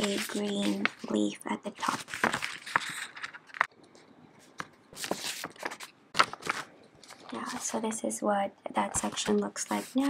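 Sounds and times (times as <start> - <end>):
plastic sheet and paper rustling: 0.0 - 3.7, 4.4 - 8.0, 8.8 - 10.0.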